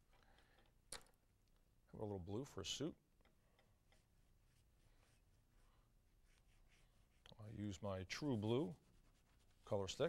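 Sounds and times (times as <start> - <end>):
colour stick scratching on paper: 6.2 - 7.4, 8.2 - 10.0.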